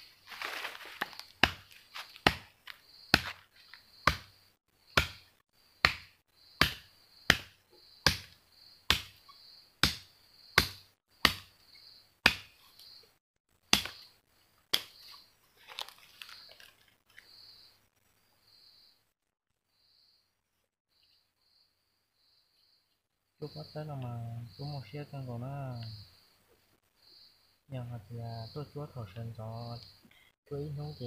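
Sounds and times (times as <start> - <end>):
wood being struck: 1.1 - 2.5, 3.1 - 3.4, 4.0 - 4.3, 5.0 - 11.6, 12.2 - 12.6, 13.7 - 14.1.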